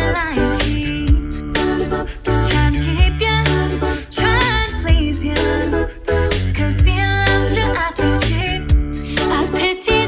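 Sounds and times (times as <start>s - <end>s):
a cappella harmony singing: 0.0s - 10.0s
beatboxed vocal percussion: 0.0s - 10.0s
sung bass line: 0.0s - 10.0s.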